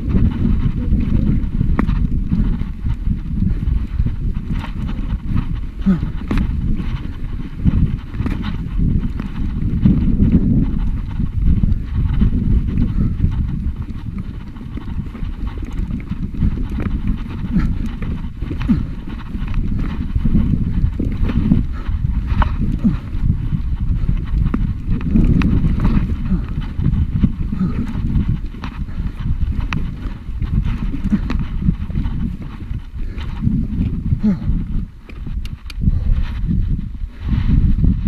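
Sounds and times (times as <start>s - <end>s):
bike rattling: 0.0s - 38.0s
steady low rumble: 0.0s - 38.0s
tyres crunching over stones: 13.6s - 34.0s.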